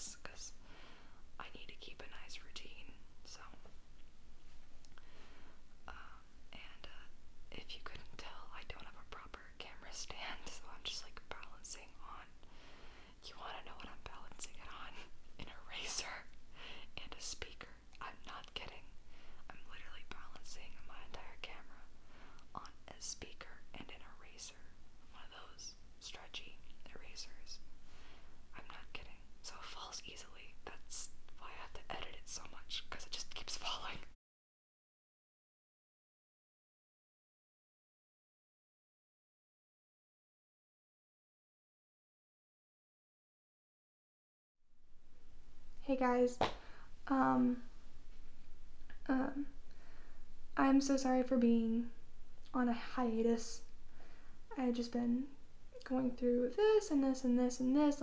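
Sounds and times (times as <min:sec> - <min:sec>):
woman whispering: 0:00.0 - 0:00.6, 0:01.4 - 0:03.7, 0:05.8 - 0:12.4, 0:13.2 - 0:21.9, 0:22.5 - 0:27.6, 0:28.5 - 0:34.2, 0:45.8 - 0:46.4, 0:47.0 - 0:47.7, 0:48.9 - 0:49.6, 0:50.6 - 0:53.7, 0:54.5 - 0:58.0.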